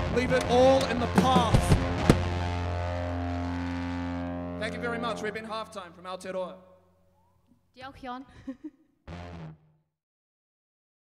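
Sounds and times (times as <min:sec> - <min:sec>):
drum hits: 0:00.4 - 0:02.4
amplified chord ringing: 0:02.3 - 0:06.6.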